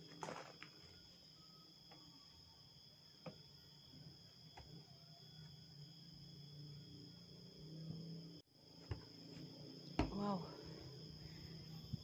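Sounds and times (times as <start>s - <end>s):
insect chorus: 0.0s - 12.0s.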